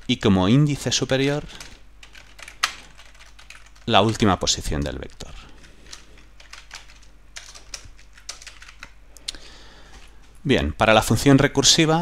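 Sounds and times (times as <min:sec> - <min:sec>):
typing on computer keyboard: 0:01.0 - 0:09.0.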